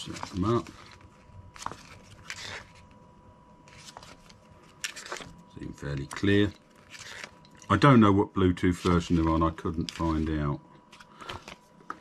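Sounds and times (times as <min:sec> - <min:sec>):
paper pages rustling: 0:00.0 - 0:03.0, 0:03.6 - 0:07.8, 0:08.6 - 0:12.0.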